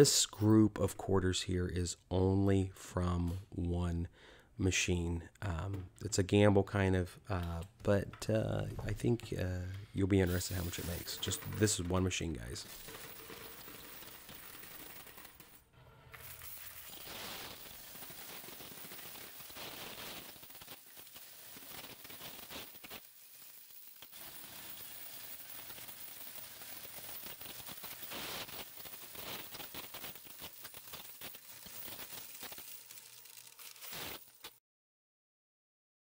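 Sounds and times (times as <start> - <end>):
coins rattling through counter: 10.3 - 11.9, 12.6 - 15.6, 16.2 - 34.6.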